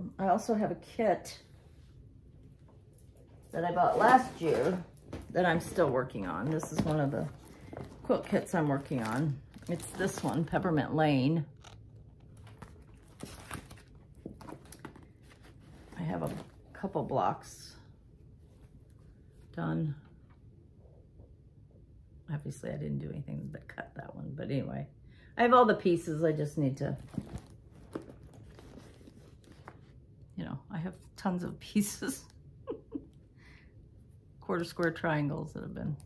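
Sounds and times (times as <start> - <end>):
plastic bag crinkling: 3.8 - 10.8, 11.5 - 16.6.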